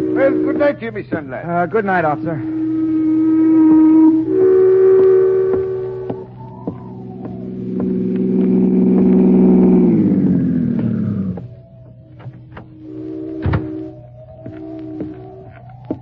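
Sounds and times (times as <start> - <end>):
low rumble: 0.0 - 16.0
ship horn blasts: 0.0 - 16.0.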